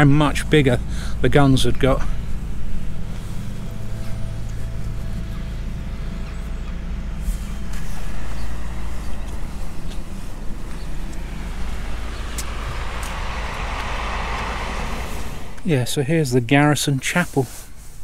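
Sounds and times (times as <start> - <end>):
faint hum: 0.0 - 16.9
low outdoor rumble: 0.0 - 17.3.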